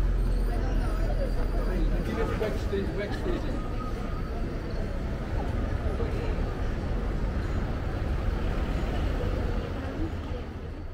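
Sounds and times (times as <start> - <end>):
murmur of voices: 0.0 - 10.9
steady low street rumble: 0.0 - 10.9.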